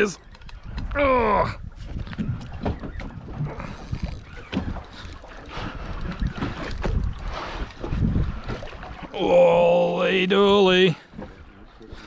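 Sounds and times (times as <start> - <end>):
wind buffeting microphone: 0.0 - 9.2
water against boat hull: 0.0 - 12.0.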